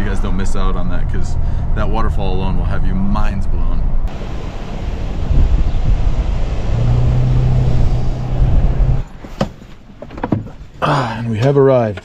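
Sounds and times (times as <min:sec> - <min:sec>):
road noise in car cabin: 0:00.0 - 0:10.3
car engine drone: 0:03.8 - 0:09.2.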